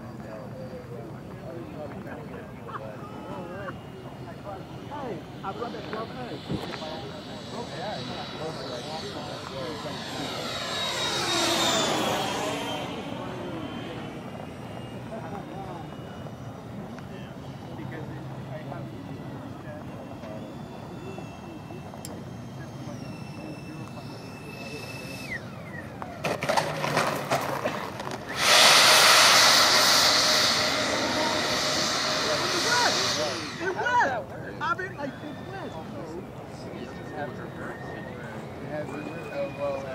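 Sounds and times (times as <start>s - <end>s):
electric ducted fans whining: 0.0s - 39.9s
loud even rushing noise: 28.3s - 34.0s.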